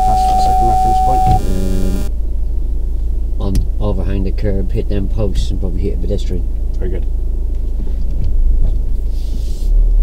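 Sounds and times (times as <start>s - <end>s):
parking sensor steady tone: 0.0s - 2.1s.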